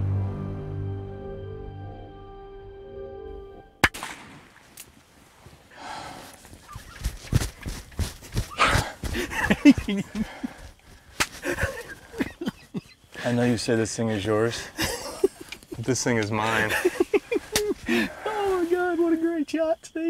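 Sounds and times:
music: 0:00.0 - 0:03.8
rustling: 0:04.5 - 0:13.6.

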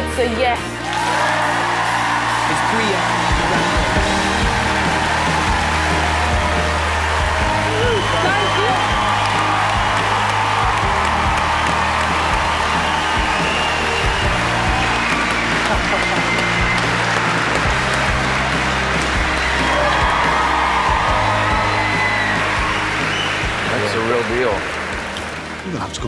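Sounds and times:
background music with sustained bass: 0:00.0 - 0:26.0
audience cheering and applauding: 0:00.6 - 0:26.0.

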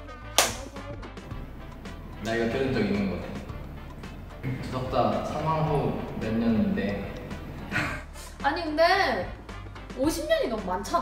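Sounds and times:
background music: 0:00.0 - 0:11.0
high-five hand slap: 0:00.4 - 0:00.8.

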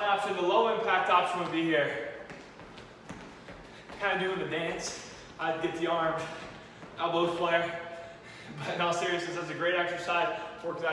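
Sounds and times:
sneakers stepping on gym floor: 0:00.2 - 0:07.8.

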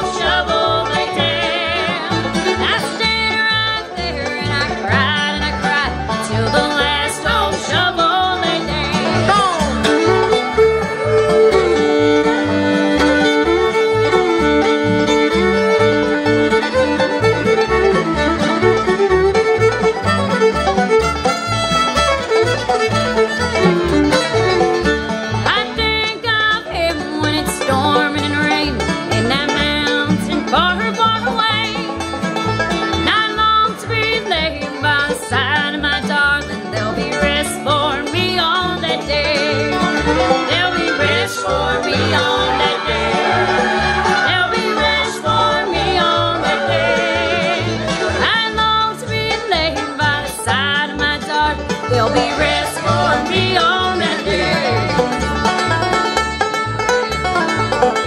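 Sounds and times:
bluegrass band playing: 0:00.0 - 0:58.0
fiddle long held notes: 0:00.0 - 0:58.0.

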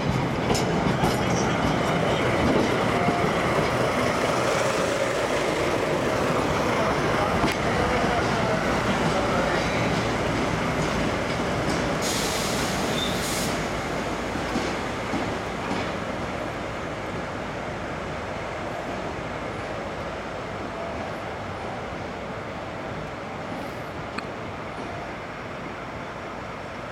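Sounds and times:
diesel locomotive rolling: 0:00.0 - 0:26.9
brief hiss: 0:12.0 - 0:13.7.

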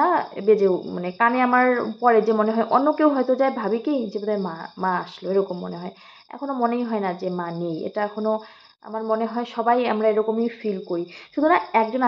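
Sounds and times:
insects chirring: 0:00.0 - 0:12.0
woman speaking: 0:00.0 - 0:12.0.

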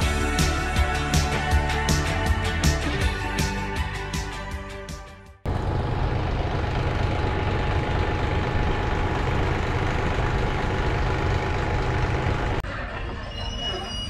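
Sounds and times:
background music: 0:00.0 - 0:05.4.

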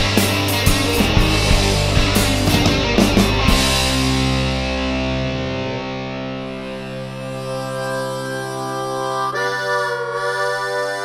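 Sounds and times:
band sustaining low chord: 0:00.0 - 0:09.1
harmonica playing long notes: 0:00.0 - 0:11.0.

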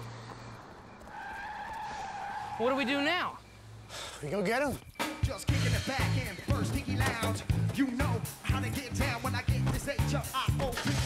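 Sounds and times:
high tyre squeal: 0:00.8 - 0:04.0.

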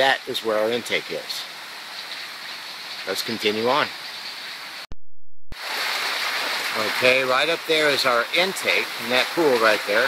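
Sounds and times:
creek water rushing over rocks: 0:05.6 - 0:10.0.

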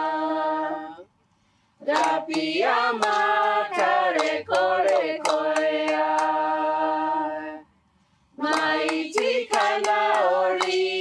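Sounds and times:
group singing in parts: 0:00.0 - 0:01.1, 0:01.8 - 0:07.7, 0:08.4 - 0:11.0.

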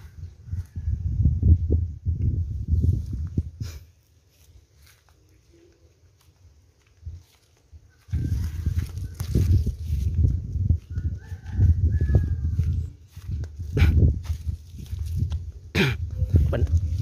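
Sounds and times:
wind rumbling on microphone: 0:00.0 - 0:04.6, 0:06.9 - 0:17.0
leaves brushing: 0:07.2 - 0:10.4
microphone handling noise: 0:08.1 - 0:17.0.

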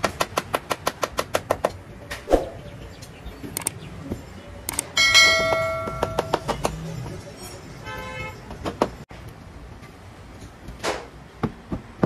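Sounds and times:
ringing metallic clang: 0:05.0 - 0:06.6.

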